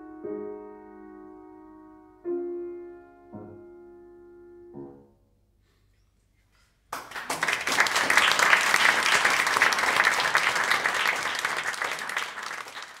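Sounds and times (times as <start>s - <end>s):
applause: 6.9s - 13.0s.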